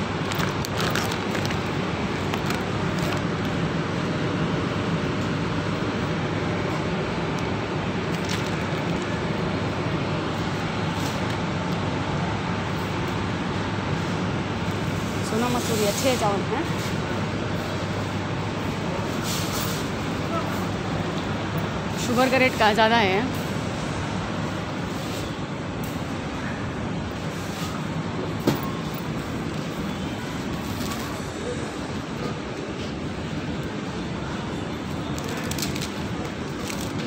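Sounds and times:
low rumbling supermarket noise: 0.0 - 37.0.

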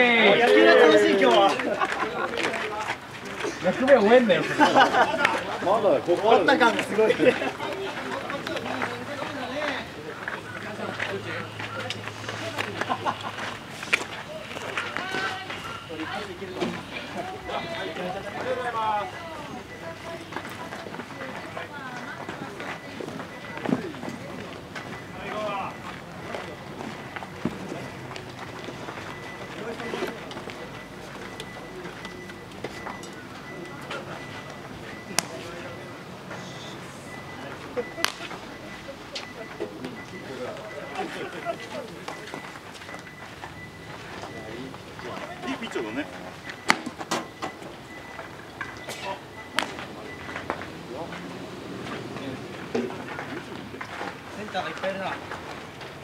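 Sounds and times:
players calling out: 0.0 - 56.0.

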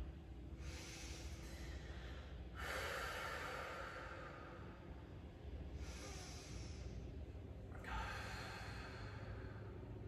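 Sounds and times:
woman breathing through nose: 0.5 - 4.8, 5.8 - 7.2, 7.8 - 9.8.

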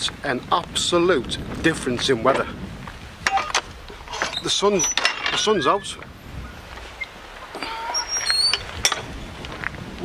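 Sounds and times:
birds chirping: 3.2 - 9.3.

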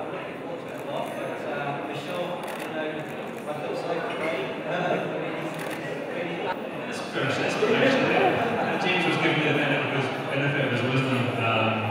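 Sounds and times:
man talking into microphone: 6.9 - 11.9.

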